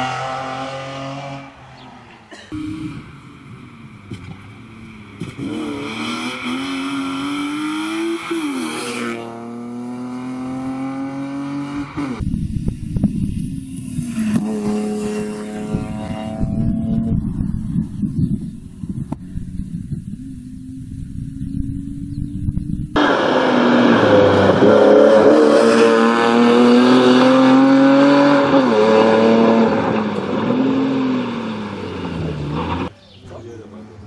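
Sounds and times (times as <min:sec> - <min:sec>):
rally car engine revving: 0:00.0 - 0:01.9, 0:02.5 - 0:17.9, 0:19.6 - 0:32.9.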